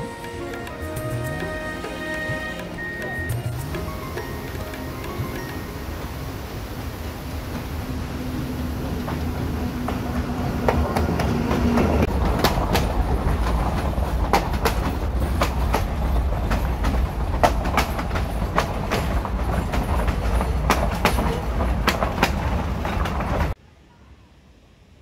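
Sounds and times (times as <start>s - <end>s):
diesel train rumble: 0.0s - 23.6s
train wheels clicking on rail joints: 8.8s - 23.6s.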